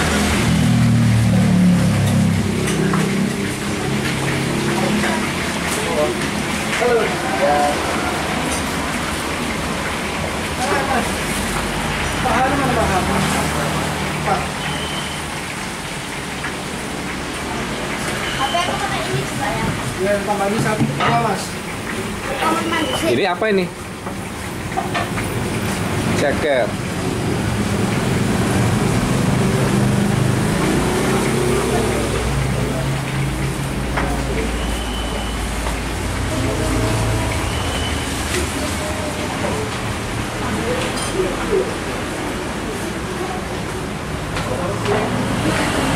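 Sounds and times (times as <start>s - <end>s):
road traffic rumble: 0.0s - 45.9s
indistinct voices: 29.8s - 45.9s.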